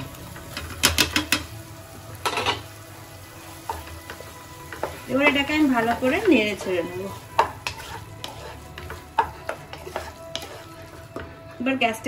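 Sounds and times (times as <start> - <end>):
low steady sizzle: 0.0 - 12.0
wooden spatula scraping pot: 3.3 - 11.5.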